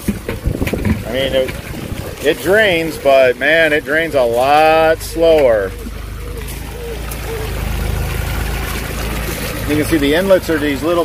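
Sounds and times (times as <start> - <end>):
water pouring onto gravel: 0.0 - 11.0.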